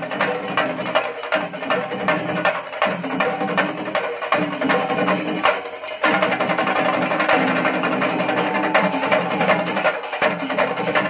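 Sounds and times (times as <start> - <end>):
cymbals: 0.0 - 11.0
drum troupe playing fast rhythm: 0.0 - 11.0.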